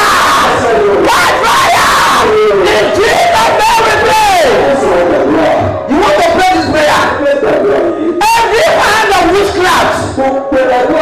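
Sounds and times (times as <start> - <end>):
man shouting into a microphone: 0.0 - 11.0
many voices praying aloud: 0.0 - 11.0.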